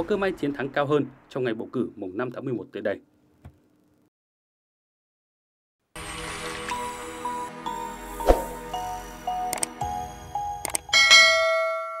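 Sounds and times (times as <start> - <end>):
bright bell chime: 10.0 - 12.0.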